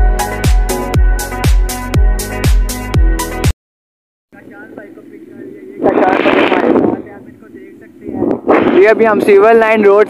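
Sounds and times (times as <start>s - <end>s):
man speaking: 4.4s - 10.0s
wind and road noise: 4.4s - 10.0s.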